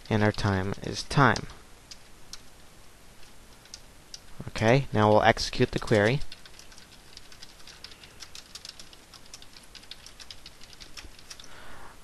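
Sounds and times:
typing on computer keyboard: 3.5 - 4.2, 5.8 - 11.5.

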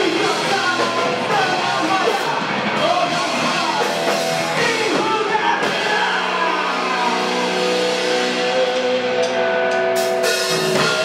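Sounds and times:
amp feedback: 0.0 - 11.0
droning electric guitars: 0.0 - 11.0.

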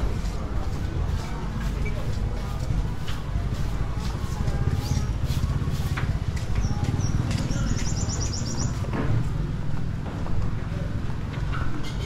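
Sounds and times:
small bird chirping: 6.6 - 8.8.

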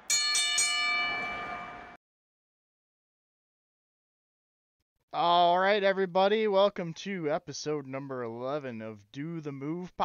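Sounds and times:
bright bell-like chime ringing: 0.0 - 2.0.

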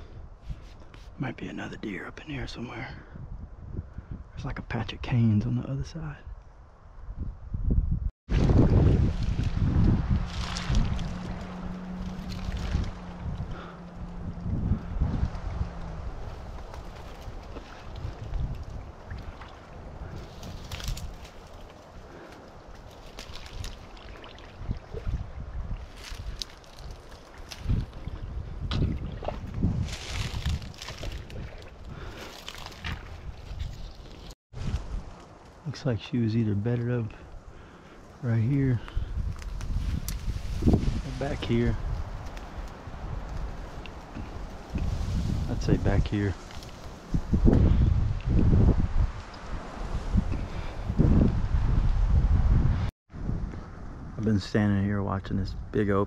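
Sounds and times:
wind buffeting microphone: 0.0 - 56.0
footsteps through dense grass: 8.4 - 13.4, 16.1 - 24.6, 25.8 - 28.2, 29.2 - 35.1, 39.2 - 47.4.

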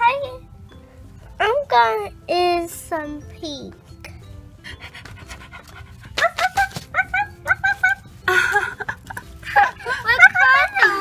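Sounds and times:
background music: 0.0 - 11.0
puppy panting: 4.6 - 6.2.

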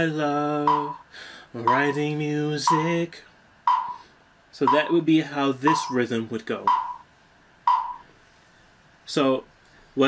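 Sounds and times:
percussive click with ringing tone: 0.7 - 1.0, 3.7 - 4.0, 6.7 - 7.0, 7.7 - 8.0.

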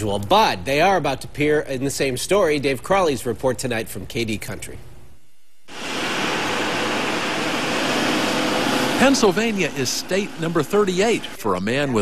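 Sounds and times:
truck engine and tyre noise: 5.7 - 11.4.

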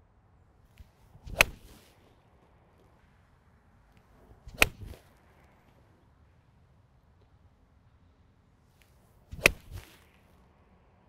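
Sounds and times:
golf club swing swish: 0.8 - 2.1, 4.1 - 5.2, 8.8 - 10.3
golf club striking ball: 1.3 - 1.7, 4.5 - 5.0, 9.3 - 9.9.

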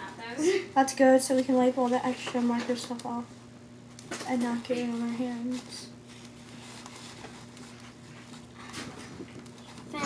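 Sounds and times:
steady low hum: 0.0 - 10.0
paper tissue rustling: 4.2 - 10.0.

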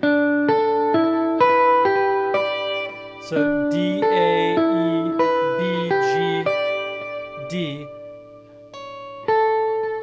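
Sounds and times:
clean electric guitar notes: 2.3 - 9.0.

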